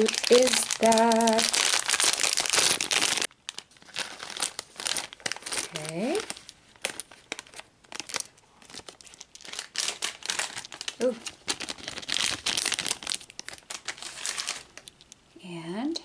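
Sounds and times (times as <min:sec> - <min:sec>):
plastic bag crinkling: 0:00.0 - 0:15.2.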